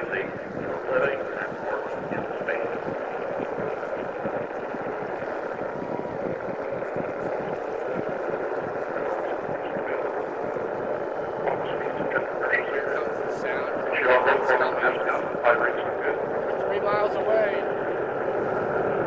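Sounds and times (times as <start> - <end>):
distant rocket engine roar: 0.0 - 19.0.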